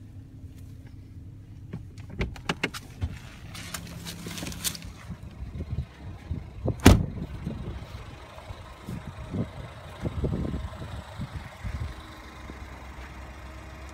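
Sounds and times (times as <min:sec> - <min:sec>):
car engine idling: 0:00.0 - 0:13.9
car door shutting: 0:06.7 - 0:07.1.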